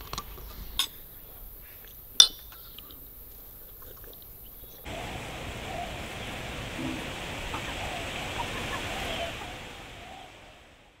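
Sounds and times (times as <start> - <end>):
chickens clucking: 2.5 - 10.6
steady rushing outdoor noise: 4.8 - 11.0.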